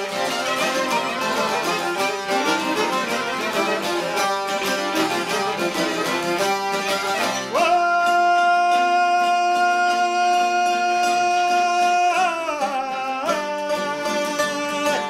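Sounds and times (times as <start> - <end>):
plucked lutes and violin folk tune: 0.0 - 15.0
man singing long high note: 7.5 - 15.0.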